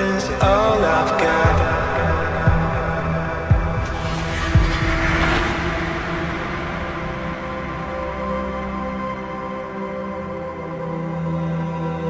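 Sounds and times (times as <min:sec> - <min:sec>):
droning synth tones: 0:02.0 - 0:11.3
hissing swell: 0:03.0 - 0:10.0.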